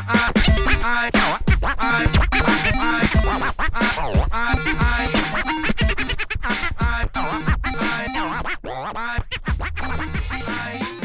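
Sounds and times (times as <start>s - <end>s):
bass line: 0.0s - 8.4s, 9.2s - 10.9s
hip-hop beat: 0.0s - 11.0s
vinyl record scratching: 0.0s - 11.0s.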